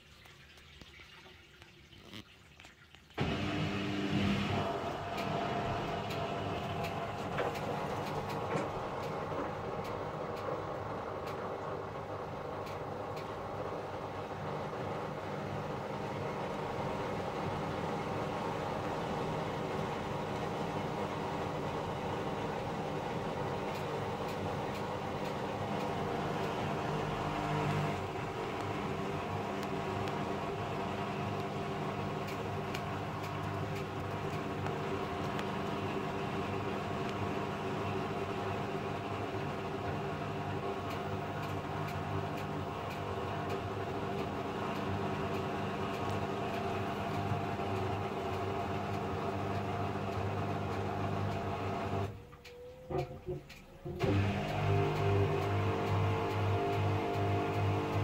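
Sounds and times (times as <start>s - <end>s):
washing machine spinning: 0.0s - 58.0s.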